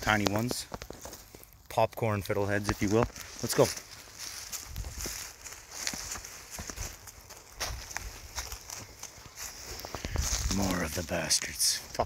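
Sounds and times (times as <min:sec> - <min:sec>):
footsteps in dry leaves: 0:00.0 - 0:01.6, 0:02.2 - 0:12.0.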